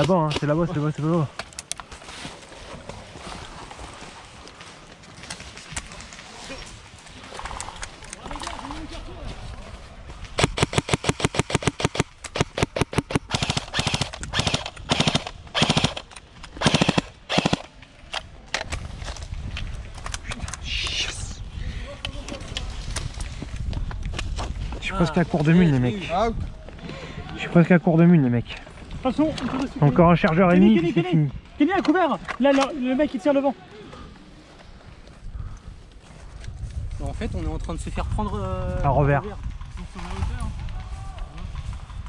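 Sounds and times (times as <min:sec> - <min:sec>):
airsoft gun automatic bursts: 0:10.4 - 0:17.7.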